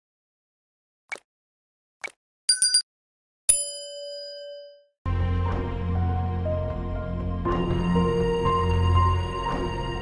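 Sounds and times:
bell ding: 0:02.5 - 0:02.9, 0:03.5 - 0:04.9.

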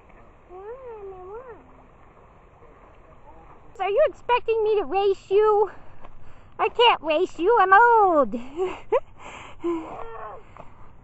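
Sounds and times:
faint background noise: 0:00.0 - 0:11.0.

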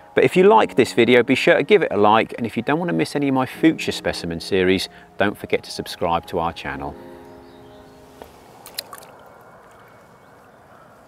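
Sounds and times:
held musical chord: 0:00.0 - 0:08.6
water dripping: 0:08.2 - 0:10.0.

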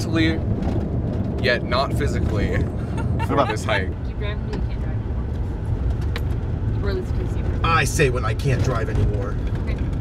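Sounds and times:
truck rumbling on gravel: 0:00.0 - 0:04.0.

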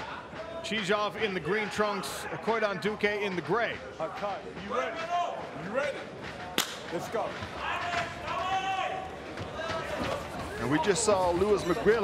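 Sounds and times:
arena background noise: 0:00.0 - 0:12.0.

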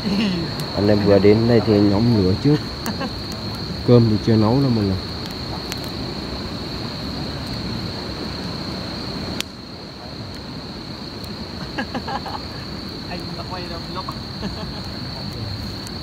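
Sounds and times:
crickets trilling: 0:00.0 - 0:16.0.

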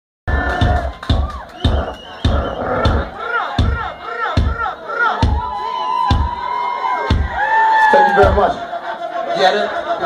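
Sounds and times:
crowd shouting and cheering: 0:00.3 - 0:10.0.

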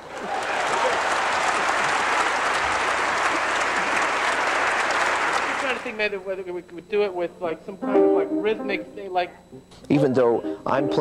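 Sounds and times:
man speaking: 0:09.8 - 0:11.0.

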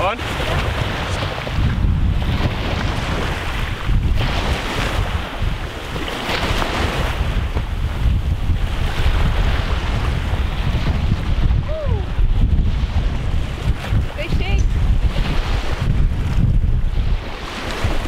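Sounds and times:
wind buffeting microphone: 0:00.0 - 0:18.0
small waves washing on rocks: 0:02.3 - 0:11.2.

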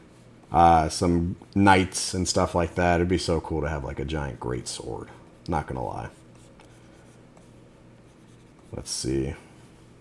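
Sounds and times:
low steady hum: 0:00.0 - 0:10.0
stylus scratching on tablet screen: 0:05.7 - 0:09.0.

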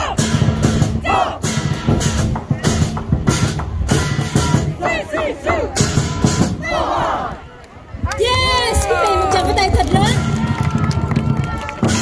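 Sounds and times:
drum and cymbals beating: 0:00.0 - 0:06.7.

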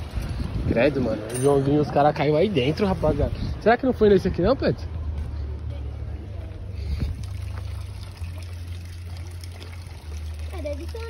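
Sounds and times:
water trickling in ditch: 0:06.7 - 0:11.0.

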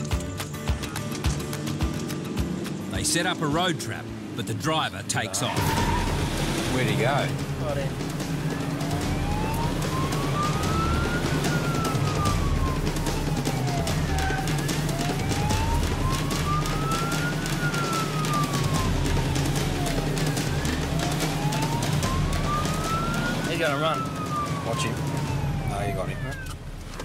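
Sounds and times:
engine and road rumble: 0:00.0 - 0:27.0
police siren wailing: 0:05.1 - 0:27.0.

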